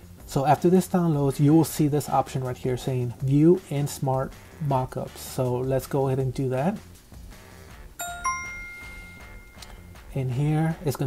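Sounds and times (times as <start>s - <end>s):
two-note electronic chime: 8.0s - 10.1s.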